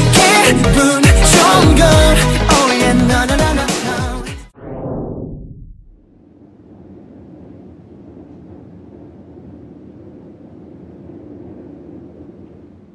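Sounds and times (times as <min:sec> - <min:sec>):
low rumbling drone: 0:00.0 - 0:03.1, 0:04.6 - 0:12.9.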